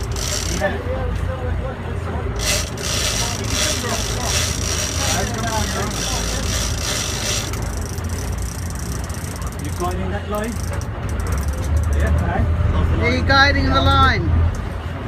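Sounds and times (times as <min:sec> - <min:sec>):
fishing reel drag buzzing: 0:00.0 - 0:00.7, 0:02.4 - 0:11.9.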